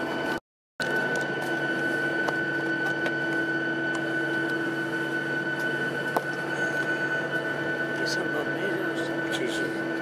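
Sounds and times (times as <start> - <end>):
airplane cabin hum: 0.0 - 10.0.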